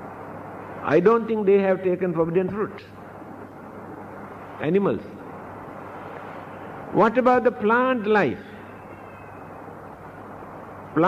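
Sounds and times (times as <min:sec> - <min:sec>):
background hiss: 0:00.0 - 0:11.0
faint low hum: 0:00.0 - 0:11.0.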